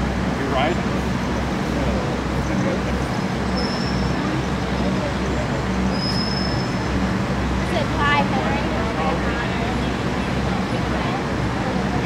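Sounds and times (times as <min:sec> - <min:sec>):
crowd chatter: 0:00.0 - 0:12.0
outdoor rumble and hiss: 0:00.0 - 0:12.0.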